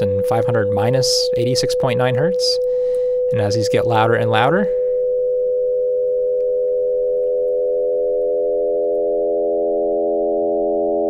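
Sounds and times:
synthesizer drone: 7.6 - 11.0.

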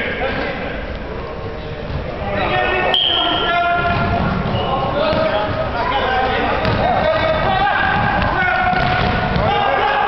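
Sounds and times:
players shouting in echoing hall: 2.2 - 10.0
ball kick: 6.6 - 9.6.

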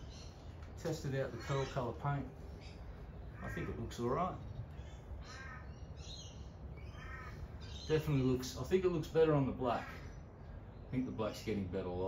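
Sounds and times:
low background rumble: 0.0 - 12.0
crow cawing: 3.2 - 4.2, 4.9 - 6.0, 6.8 - 7.9.

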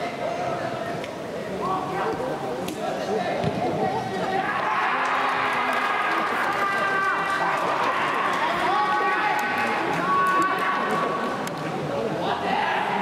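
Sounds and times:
players shouting in echoing dome: 2.9 - 11.4, 12.0 - 13.0
team cheering: 3.9 - 11.3.

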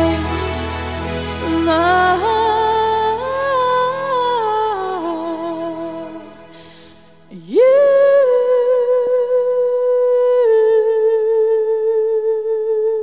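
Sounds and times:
woman singing long note: 0.0 - 6.4.

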